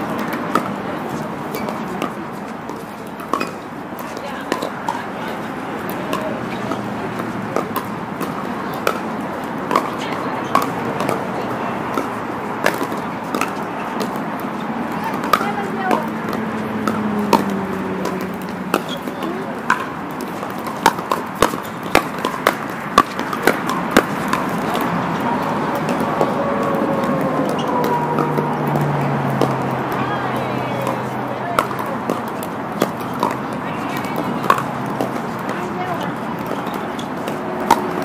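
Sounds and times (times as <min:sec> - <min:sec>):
paddles hitting plastic ball: 0:00.0 - 0:38.0
players' voices: 0:00.0 - 0:38.0.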